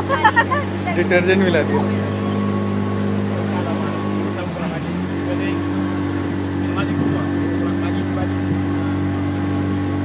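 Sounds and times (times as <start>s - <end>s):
motorboat engine running: 0.0s - 10.0s.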